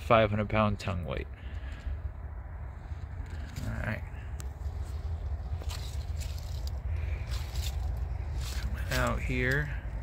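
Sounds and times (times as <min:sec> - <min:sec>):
steady low rumble: 0:00.0 - 0:10.0
scrapes and rustles: 0:02.7 - 0:09.7
light footsteps: 0:04.3 - 0:09.8.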